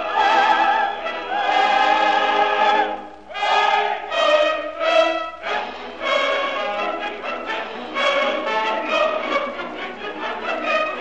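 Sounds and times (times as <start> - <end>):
operatic singing with orchestra: 0.0 - 11.0.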